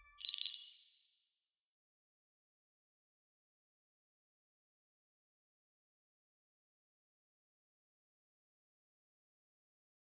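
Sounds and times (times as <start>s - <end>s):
bright high-pitched ding: 0.0s - 1.0s.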